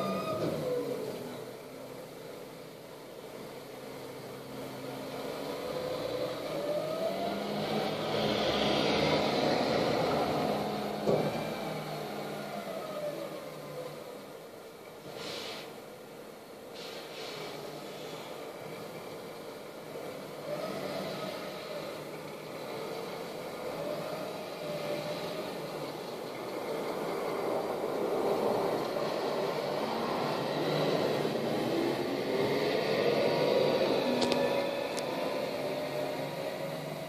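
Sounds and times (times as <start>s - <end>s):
hydraulics whining: 0.0s - 1.5s, 19.9s - 37.0s
refuse truck engine: 0.0s - 37.0s.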